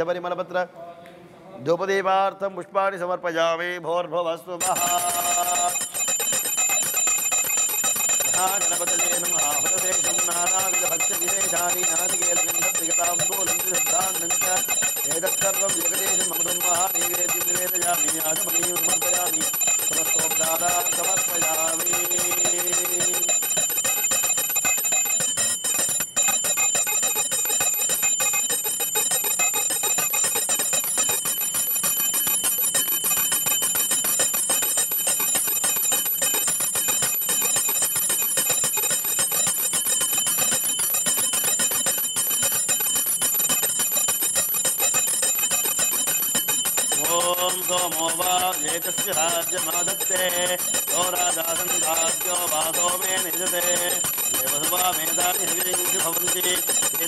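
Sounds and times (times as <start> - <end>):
hand bell ringing rapidly: 4.6 - 57.0.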